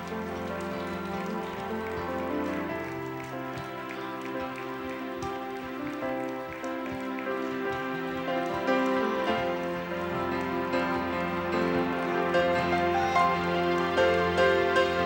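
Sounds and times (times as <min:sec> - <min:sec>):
scattered hand clapping: 0:00.0 - 0:15.0
slow keyboard chords: 0:00.0 - 0:15.0.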